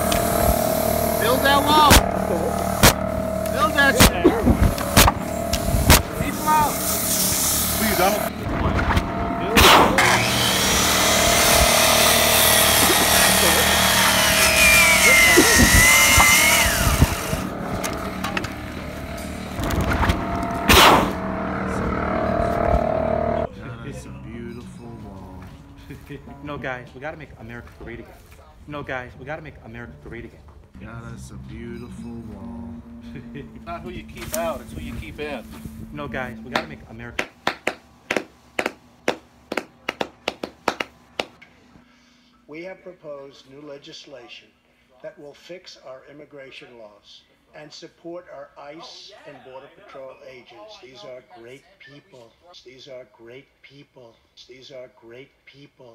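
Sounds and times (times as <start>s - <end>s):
circular saw cutting wood: 0.0s - 23.5s
person clapping hands: 36.6s - 41.4s.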